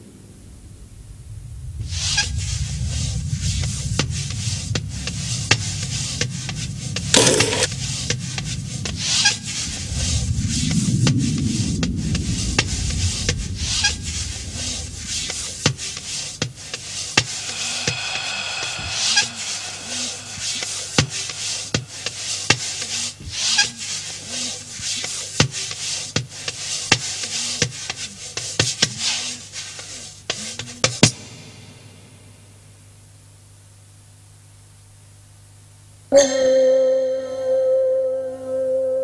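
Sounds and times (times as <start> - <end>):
low rumble: 0.2 - 23.0
whooshing swells: 1.3 - 23.2
ringing tone: 36.1 - 39.0.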